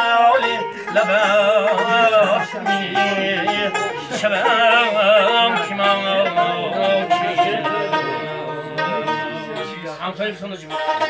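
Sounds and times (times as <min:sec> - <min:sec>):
man singing: 0:00.0 - 0:10.0
plucked string instrument: 0:00.0 - 0:11.0.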